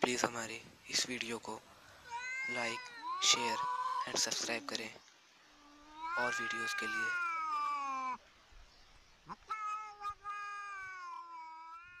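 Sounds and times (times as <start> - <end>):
cat yowling: 2.1 - 4.2, 5.6 - 8.2, 9.3 - 12.0.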